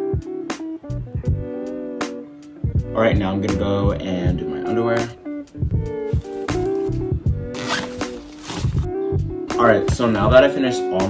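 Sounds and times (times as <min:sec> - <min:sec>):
guitar background music: 0:00.0 - 0:11.0
suitcase zipper: 0:06.1 - 0:08.9.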